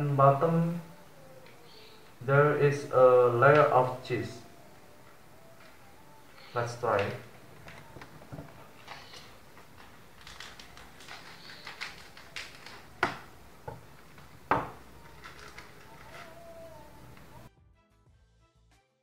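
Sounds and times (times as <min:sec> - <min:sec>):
small clicks: 0:04.9 - 0:17.5
plastic wrapper rustling: 0:05.0 - 0:17.3.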